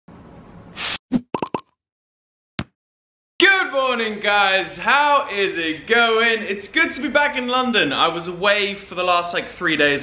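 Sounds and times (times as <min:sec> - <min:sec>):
aerosol can spraying: 0:00.8 - 0:01.0
quick popping sounds: 0:00.8 - 0:01.7.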